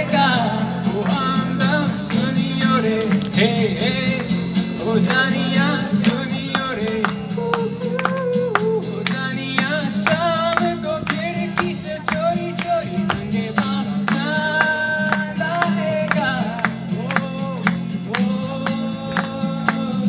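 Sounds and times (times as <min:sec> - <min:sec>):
acoustic guitar strumming: 0:00.0 - 0:20.0
man singing: 0:00.0 - 0:20.0.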